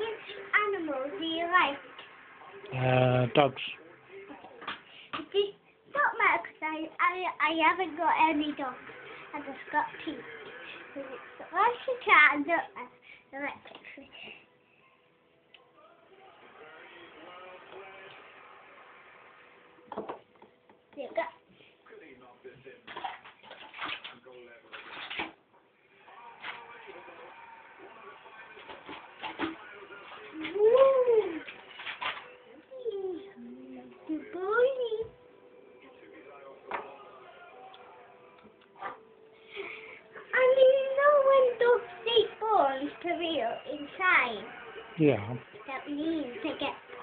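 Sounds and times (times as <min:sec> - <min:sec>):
soft indistinct speech: 0:25.9 - 0:47.0.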